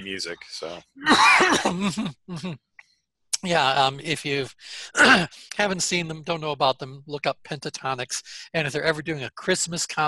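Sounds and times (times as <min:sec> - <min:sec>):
man clearing his throat: 0:00.5 - 0:02.6, 0:04.8 - 0:05.5
man chuckling: 0:01.6 - 0:02.6.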